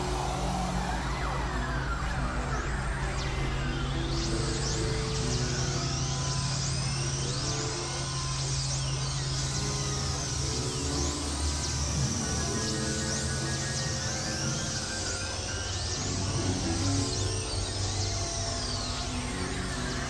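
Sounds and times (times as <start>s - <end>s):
low synthesizer drone: 0.0s - 20.0s.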